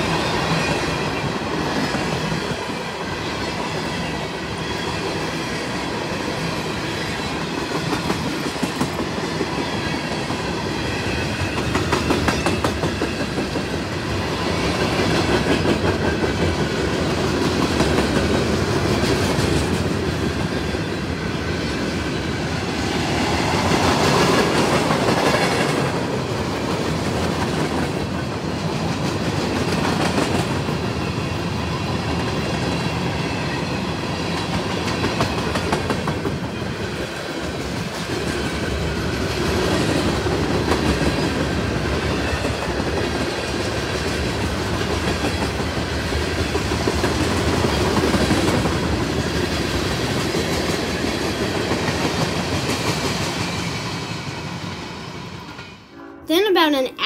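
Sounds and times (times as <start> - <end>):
freight train wheels rumbling: 0.0 - 55.8.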